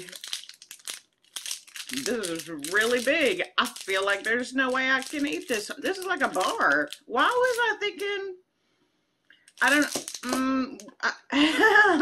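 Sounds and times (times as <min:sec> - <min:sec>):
plastic wrapper crinkling: 0:00.0 - 0:08.2, 0:09.3 - 0:10.9.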